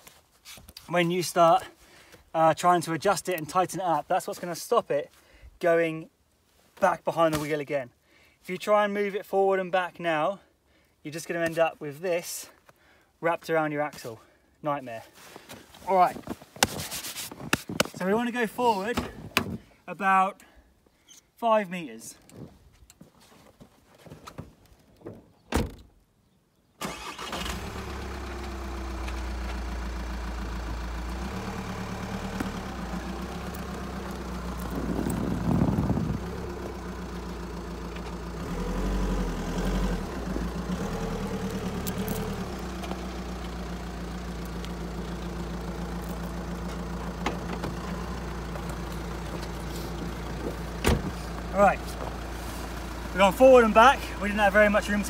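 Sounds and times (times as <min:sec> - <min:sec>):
van engine running: 0:26.9 - 0:55.0.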